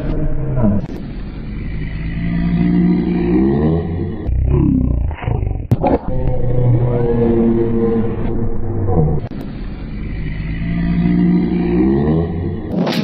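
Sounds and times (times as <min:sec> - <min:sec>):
low engine-like drone: 0:00.0 - 0:13.0.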